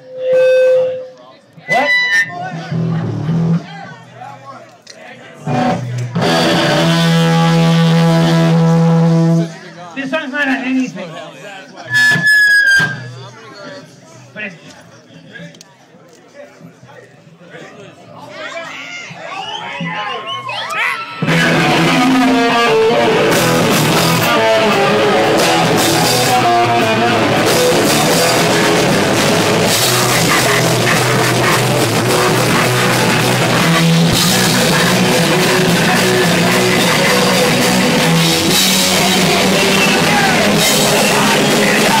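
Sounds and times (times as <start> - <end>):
distorted electric guitars: 1.7 - 3.7, 5.4 - 9.6, 21.2 - 42.0
drum kit: 5.5 - 9.4, 21.2 - 42.0.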